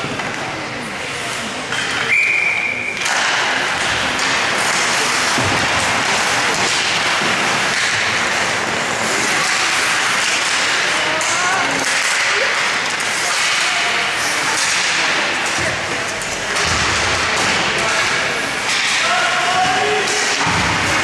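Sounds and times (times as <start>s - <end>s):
crowd noise with voices: 0.0s - 21.0s
referee whistle: 2.1s - 3.0s.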